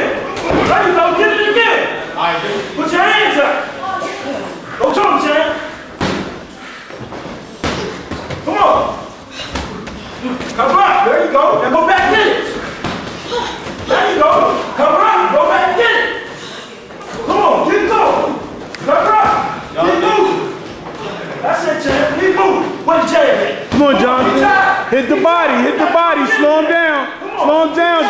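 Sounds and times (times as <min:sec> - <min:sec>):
men's voices: 0:17.2 - 0:28.0.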